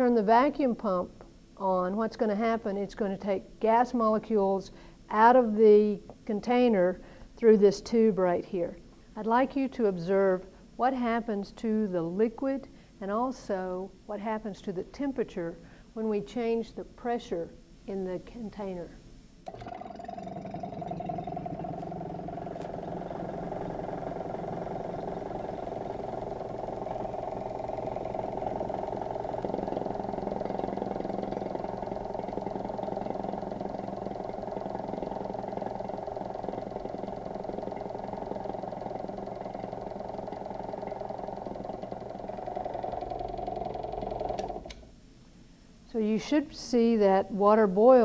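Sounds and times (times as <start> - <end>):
vacuum pump humming: 19.4 - 45.0.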